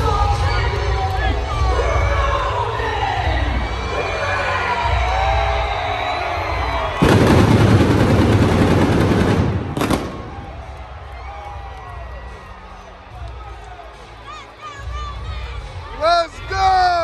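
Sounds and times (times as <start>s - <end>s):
crowd cheering and shouting: 0.0s - 17.0s
pyrotechnic blasts: 7.0s - 10.8s.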